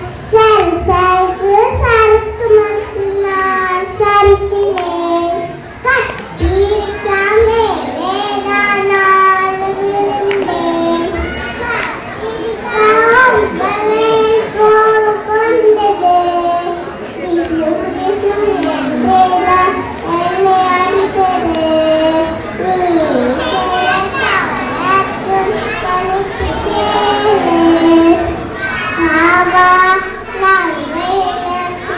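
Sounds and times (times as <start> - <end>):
children singing in unison: 0.0 - 31.9.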